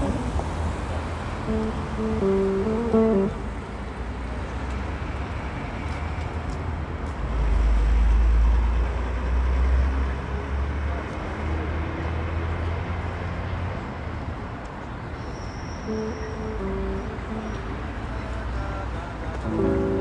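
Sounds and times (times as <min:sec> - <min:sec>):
vehicle passing: 0:00.0 - 0:04.4
city street traffic rumble: 0:00.0 - 0:20.0.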